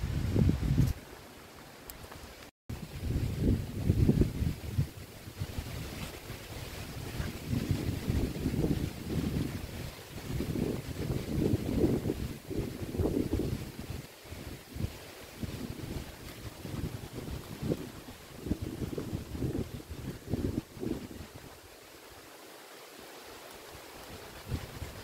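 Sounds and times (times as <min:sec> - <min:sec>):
wind buffeting microphone: 0:00.0 - 0:01.0, 0:02.7 - 0:21.7, 0:24.0 - 0:25.0.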